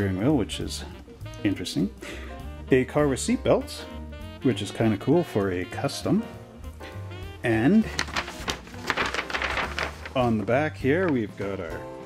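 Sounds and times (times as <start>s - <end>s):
paper rustling and crinkling: 7.7s - 11.3s.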